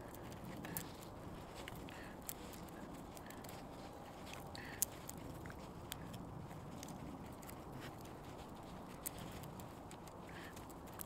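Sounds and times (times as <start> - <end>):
dry plant stalks crackling and snapping: 0.0 - 11.0
faint steady background: 0.0 - 11.0.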